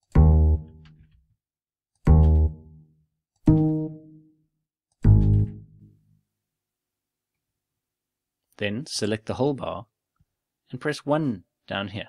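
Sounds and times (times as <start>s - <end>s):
low bass notes: 0.0s - 1.0s, 2.0s - 2.8s, 5.0s - 5.8s.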